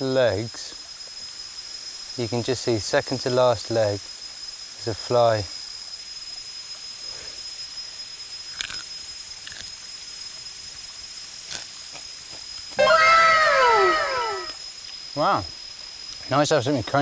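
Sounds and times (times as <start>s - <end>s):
high insect whine: 0.0s - 17.0s
beetle crunched between teeth: 8.5s - 9.7s, 11.5s - 12.0s
downward sliding pitched tones: 12.8s - 14.6s.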